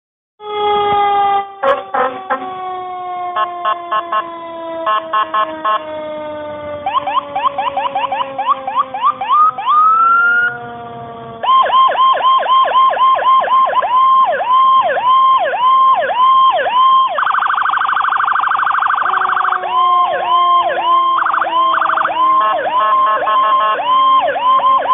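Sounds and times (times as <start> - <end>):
fire engine siren: 0.4 - 24.9
low tone falling in pitch: 18.6 - 22.8.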